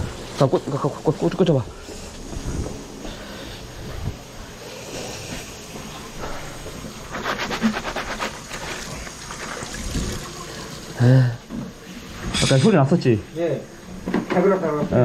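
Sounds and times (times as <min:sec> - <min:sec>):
water running down a drain: 0:07.6 - 0:11.4.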